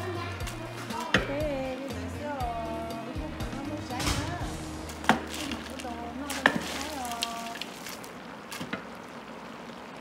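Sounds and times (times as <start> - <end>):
wooden paddle knocking metal pot: 6.3 - 7.0.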